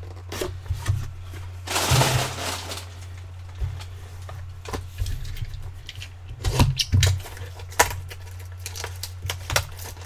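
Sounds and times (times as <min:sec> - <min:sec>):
cardboard and wrapping scraping: 0:00.0 - 0:04.0
steady low hum: 0:00.0 - 0:10.0.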